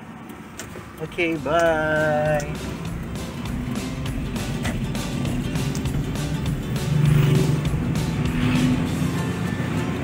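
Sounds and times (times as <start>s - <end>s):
van road noise from inside: 0.0s - 10.0s
music playing: 0.9s - 10.0s.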